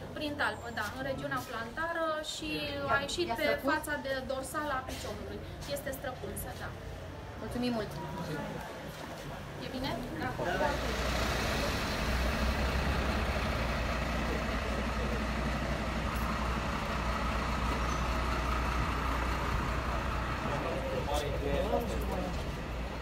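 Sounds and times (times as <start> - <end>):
vehicle engine rumbling: 4.3 - 23.0.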